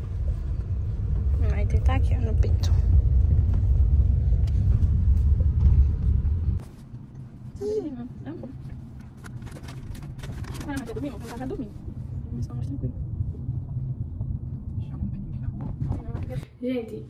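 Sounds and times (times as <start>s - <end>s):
car rumbling in motion: 0.0s - 16.5s.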